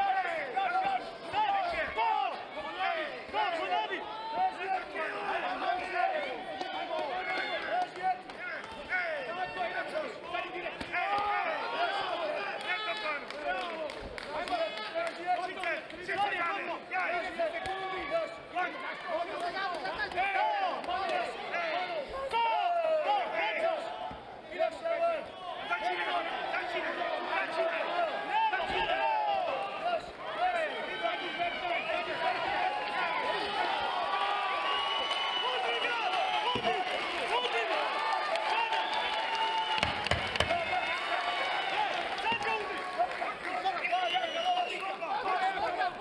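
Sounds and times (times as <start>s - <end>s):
crowd shouting and cheering: 0.0s - 46.0s.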